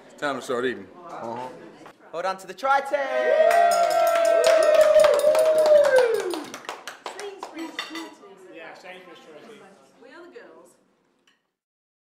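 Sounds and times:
voices whooping: 0:03.0 - 0:06.6
hand clapping: 0:03.5 - 0:07.9.

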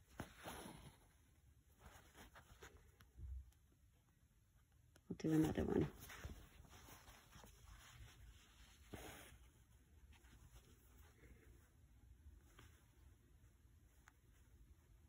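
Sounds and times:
fabric rustling: 0:00.0 - 0:03.9, 0:05.2 - 0:15.0
thread drawn through cloth: 0:05.4 - 0:15.0.

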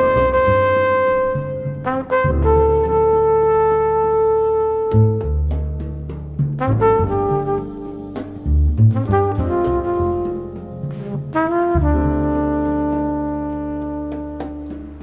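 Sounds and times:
drums: 0:00.0 - 0:15.0
jazz brass lead: 0:00.0 - 0:15.0
walking bass: 0:00.0 - 0:15.0.

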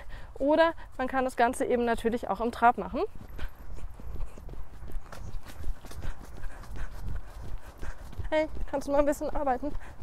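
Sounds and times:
horse hooves trotting on sand: 0:00.3 - 0:10.0.

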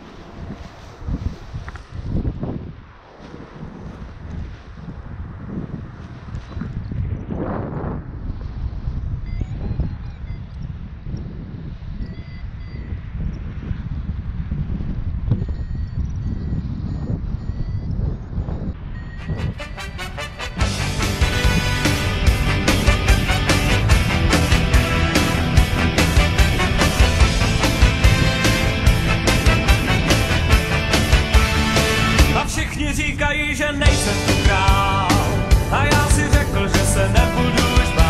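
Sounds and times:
wind buffeting microphone: 0:00.0 - 0:38.0
short electronic beeps: 0:09.2 - 0:10.8, 0:11.9 - 0:13.4, 0:15.3 - 0:20.4
music: 0:19.2 - 0:32.5, 0:33.9 - 0:38.0.

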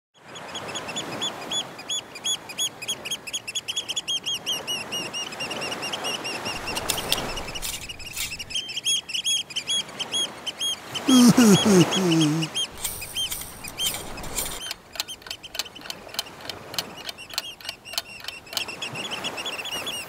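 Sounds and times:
birds chirping: 0:00.2 - 0:20.0.

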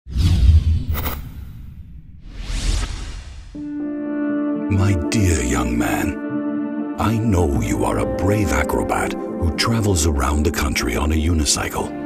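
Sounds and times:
short bright swish: 0:00.1 - 0:03.6.

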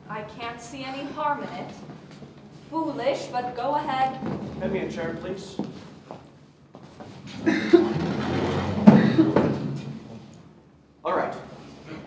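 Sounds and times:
chair scraping on wooden floor: 0:04.1 - 0:05.9, 0:06.9 - 0:10.3
chair knocks: 0:07.3 - 0:10.2.

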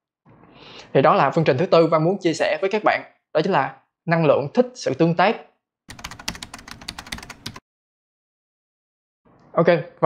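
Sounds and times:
keystroke clicks: 0:05.9 - 0:07.6.

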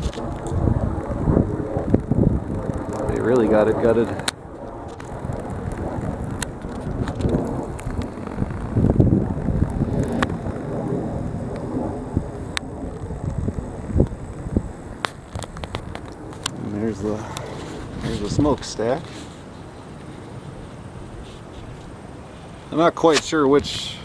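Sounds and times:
low outdoor rumble: 0:00.0 - 0:24.0.

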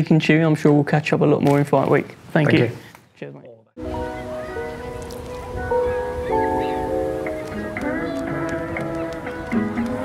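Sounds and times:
electronic keyboard chords: 0:03.8 - 0:10.0.

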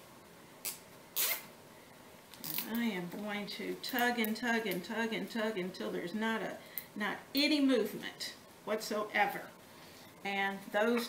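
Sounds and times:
zip tie zipping rasps: 0:00.6 - 0:01.5.

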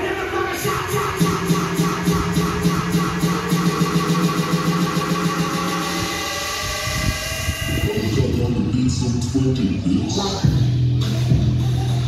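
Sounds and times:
dance music: 0:00.0 - 0:12.0
rising riser tones: 0:00.6 - 0:08.4.

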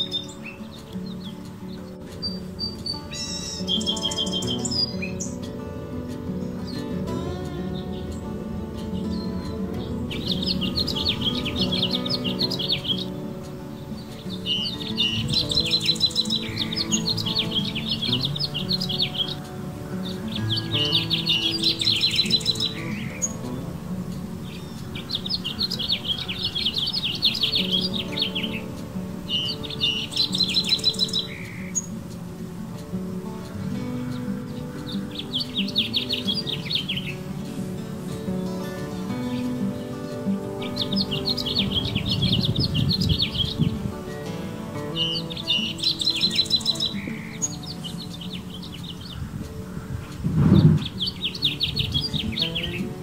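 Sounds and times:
music with held notes: 0:00.0 - 0:53.0
trilled bird chirps: 0:00.0 - 0:53.0.

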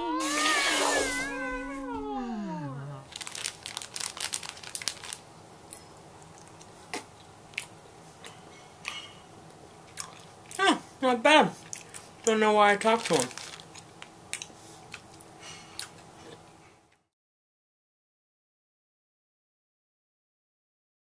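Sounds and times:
candy wrapper crackling: 0:03.1 - 0:06.6, 0:12.7 - 0:14.1
gummy candy being chewed: 0:03.1 - 0:09.0, 0:09.8 - 0:10.6, 0:12.8 - 0:15.2.

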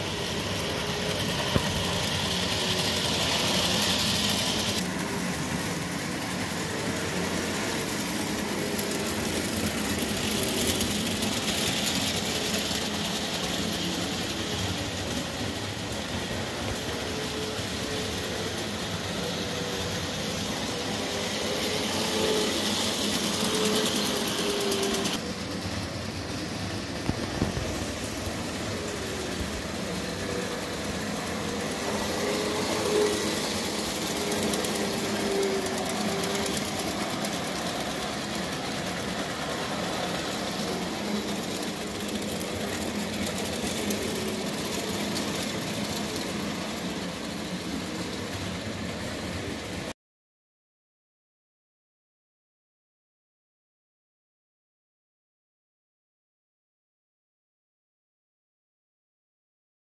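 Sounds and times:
model train wheels clattering on rails: 0:00.0 - 0:49.9.

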